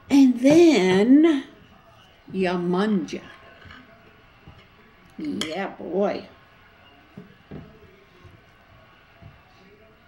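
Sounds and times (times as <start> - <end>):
soft knocks of bread on plate: 7.1 - 9.8.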